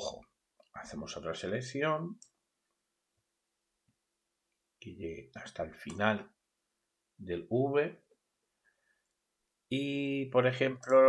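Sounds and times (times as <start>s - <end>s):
faint steady hum: 0.0s - 11.0s
computer mouse clicks: 2.2s - 2.4s.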